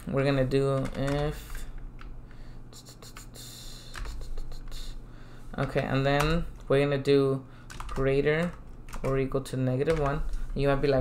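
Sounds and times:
low steady hum: 0.0s - 11.0s
typing on computer keyboard: 7.7s - 9.2s.

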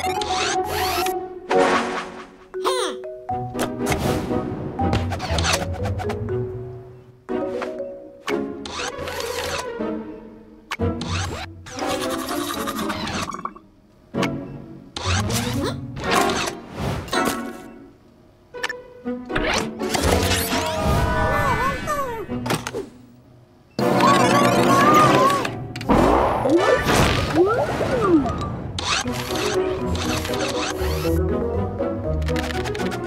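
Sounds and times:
cartoon background music: 0.0s - 33.0s.

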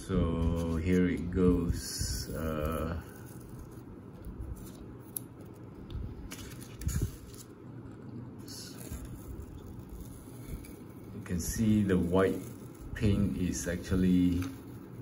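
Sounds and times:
tape peeling crackling: 0.4s - 15.0s.

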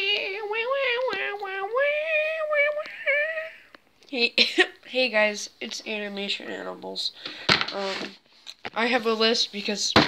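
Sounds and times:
child's wordless call: 0.0s - 3.7s.

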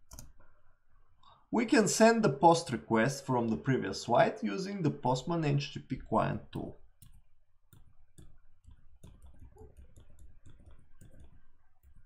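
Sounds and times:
computer keys clicking: 0.0s - 0.4s, 7.0s - 12.0s.

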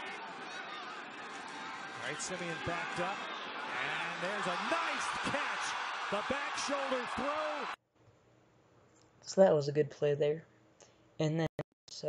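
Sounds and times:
stadium crowd noise: 0.0s - 7.8s.

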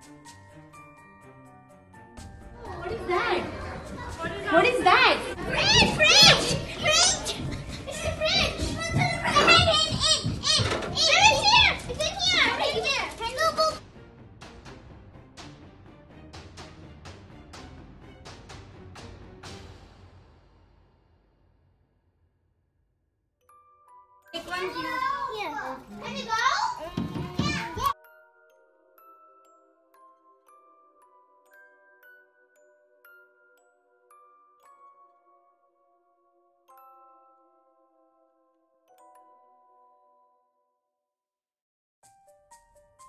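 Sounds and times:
faint background music: 2.0s - 14.1s
children shouting: 2.6s - 13.8s, 24.4s - 28.0s.

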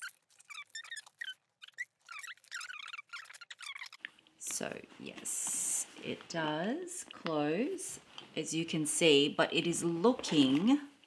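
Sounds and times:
items squeaking against leather: 0.0s - 4.2s.

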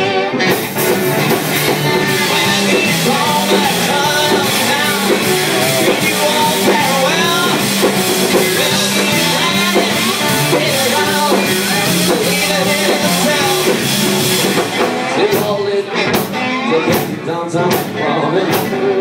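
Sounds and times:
blues-rock band playing loudly: 0.0s - 19.0s
drum kit with cymbals: 0.0s - 19.0s.

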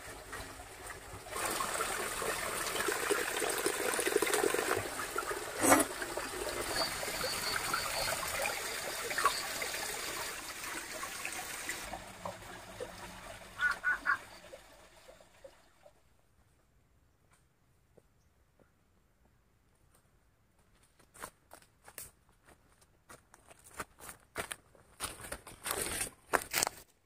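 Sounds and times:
water trickling: 0.0s - 16.1s.

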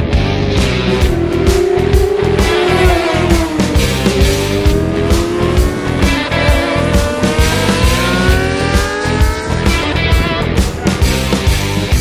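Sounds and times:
motorcycle engine accelerating: 0.0s - 12.0s
rock music with drum beat: 0.0s - 12.0s.

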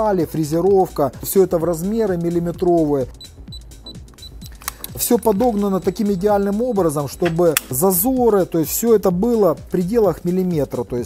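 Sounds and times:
background music: 0.0s - 11.0s
light clicks: 4.1s - 6.1s.

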